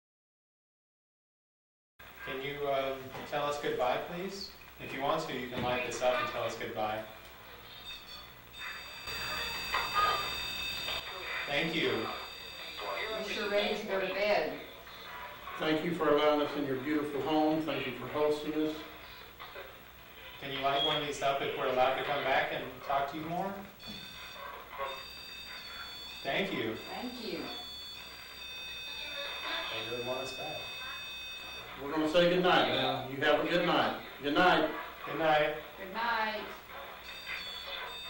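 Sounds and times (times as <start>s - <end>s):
high-pitched electronic alarm tone: 7.7s - 19.3s, 20.7s - 36.4s, 37.0s - 38.0s.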